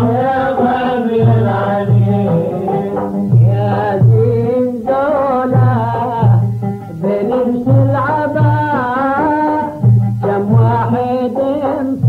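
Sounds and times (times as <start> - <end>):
low repeating beat: 0.0 - 4.6
man singing: 0.0 - 12.0
oud: 0.0 - 12.0.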